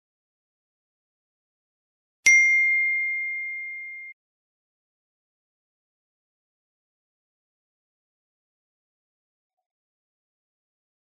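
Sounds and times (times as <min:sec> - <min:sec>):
bright chime ding: 0:02.3 - 0:04.2.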